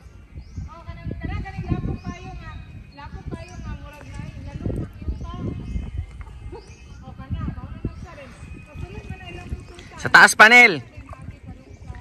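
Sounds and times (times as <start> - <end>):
voices talking and calling: 0.0 - 12.0.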